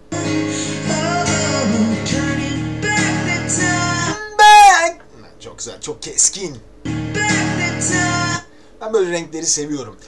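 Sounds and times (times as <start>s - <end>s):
man singing high note: 0.0s - 4.9s.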